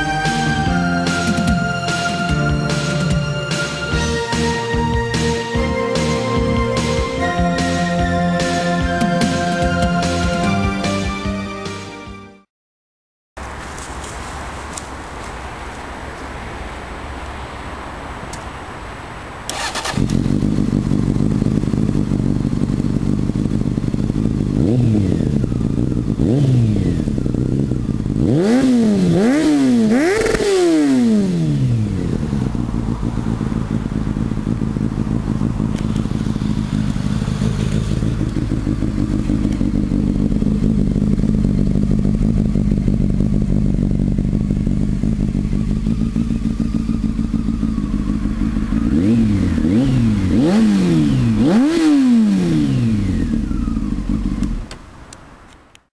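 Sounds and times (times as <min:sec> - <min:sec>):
motorcycle engine idling and revving: 0:00.0 - 0:12.0, 0:13.4 - 0:55.9.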